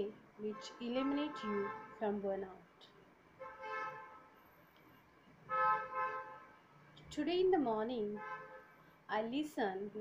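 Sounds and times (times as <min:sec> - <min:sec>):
vehicle horn toots: 0:00.5 - 0:02.0, 0:03.4 - 0:04.4, 0:05.5 - 0:06.6, 0:08.2 - 0:08.8.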